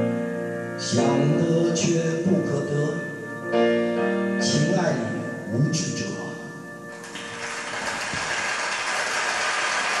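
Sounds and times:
song with piano accompaniment: 0:00.0 - 0:10.0
arena audience applause: 0:07.0 - 0:10.0.

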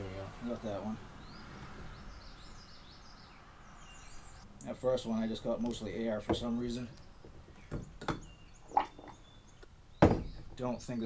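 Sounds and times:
faint bird chirps: 0:06.7 - 0:10.5.

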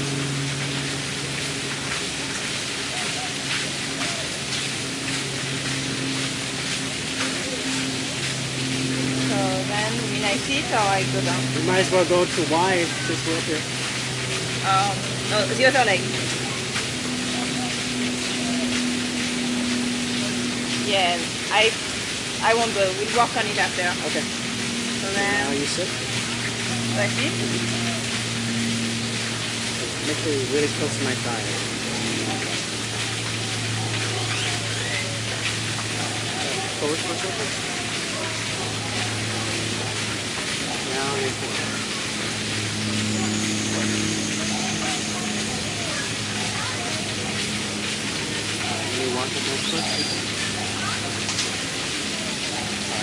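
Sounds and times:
low hum: 0:00.0 - 0:53.0
faint low talking: 0:09.2 - 0:13.6, 0:29.8 - 0:53.0.

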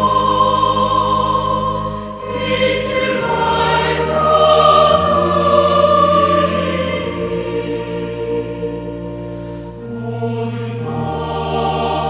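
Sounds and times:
held accompanying chords: 0:00.0 - 0:12.0
voices singing a hymn: 0:00.0 - 0:12.0.

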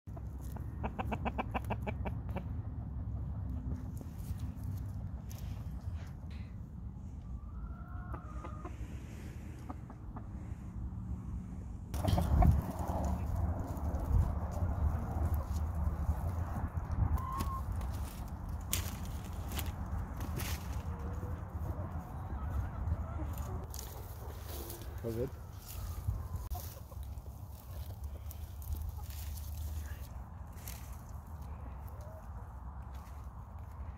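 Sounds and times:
chickens clucking: 0:00.1 - 0:33.9
steady low rumble: 0:01.9 - 0:07.6, 0:08.6 - 0:33.9
wind rumble on microphone: 0:10.4 - 0:23.8, 0:25.4 - 0:26.8.

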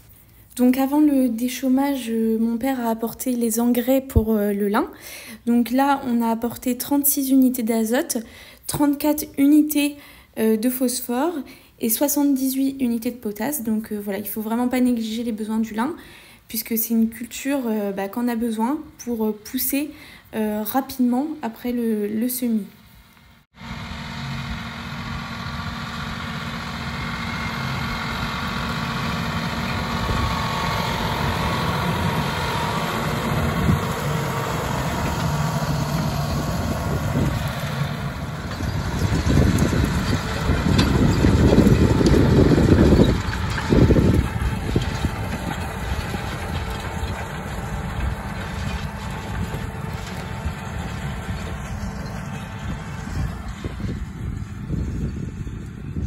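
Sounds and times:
tractor engine running: 0:23.5 - 0:56.0.

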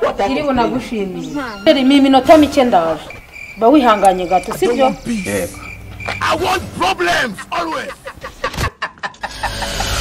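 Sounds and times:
woman speaking: 0:00.0 - 0:05.0.

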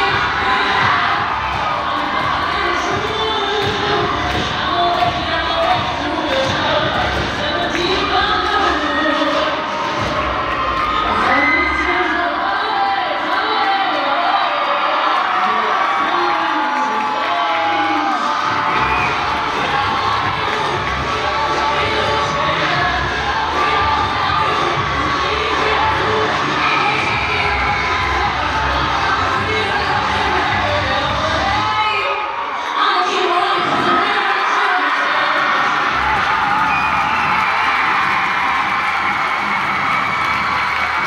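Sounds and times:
crowd cheering and screaming: 0:00.0 - 0:41.0
shouts and whoops: 0:07.8 - 0:20.6, 0:31.4 - 0:41.0.

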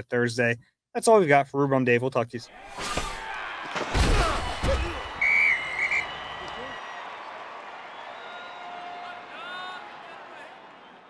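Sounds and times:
high whistle blast: 0:04.9 - 0:07.0.

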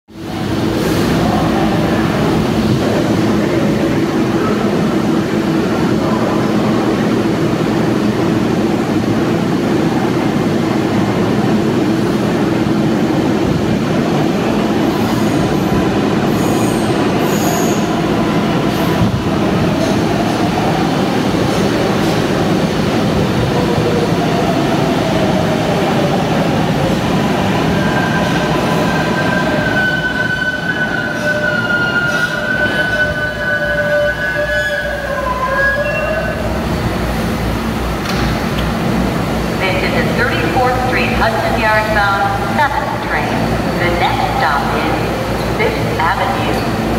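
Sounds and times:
train wheels rumbling on rail: 0:00.1 - 0:46.9
high whining train tones: 0:00.2 - 0:46.9.

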